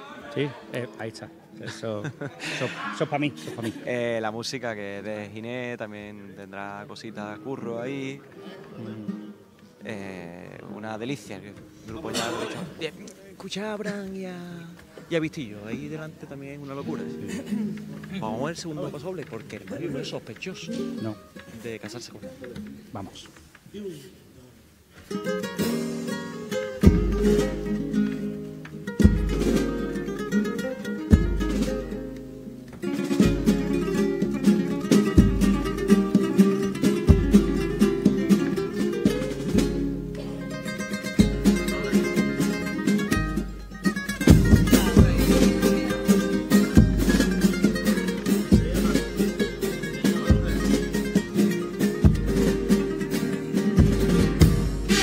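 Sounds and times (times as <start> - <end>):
guitars strummed: 25.0 - 55.0
deep drum beat: 26.8 - 28.0, 29.0 - 30.4, 31.1 - 32.0, 33.2 - 55.0
kazoos playing melody: 54.7 - 55.0.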